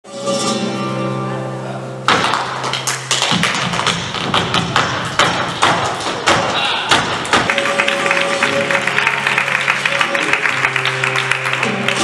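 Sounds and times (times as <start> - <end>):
shoes striking stage floor: 2.1 - 8.6.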